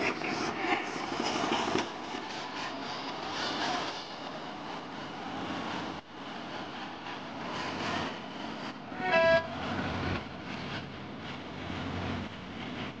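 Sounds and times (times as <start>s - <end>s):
noisy street background: 0.0s - 13.0s
short horn toot: 9.0s - 9.5s.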